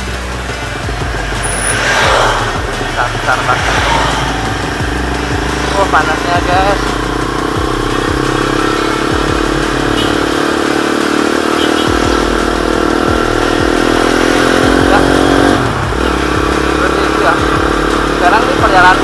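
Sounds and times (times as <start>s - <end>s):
motorcycle engine running: 0.0s - 19.0s.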